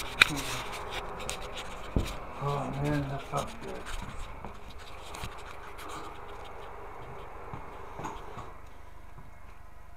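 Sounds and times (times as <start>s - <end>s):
microphone handling scratching: 0.0s - 8.6s
low hum: 0.0s - 9.9s.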